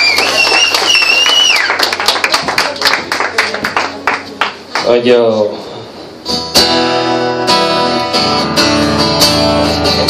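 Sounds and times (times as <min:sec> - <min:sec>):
loud whistled cheer: 0:00.0 - 0:01.8
audience clapping: 0:00.0 - 0:05.0.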